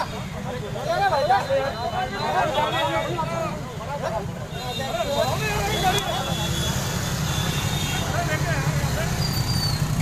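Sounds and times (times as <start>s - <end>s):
people shouting and talking: 0.0s - 10.0s.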